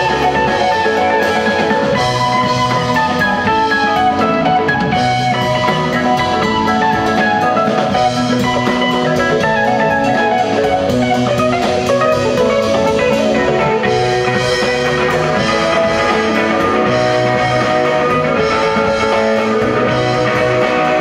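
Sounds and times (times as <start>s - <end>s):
bass guitar: 0.0s - 21.0s
drum kit with cymbal beat: 0.0s - 21.0s
electric guitars: 0.0s - 21.0s.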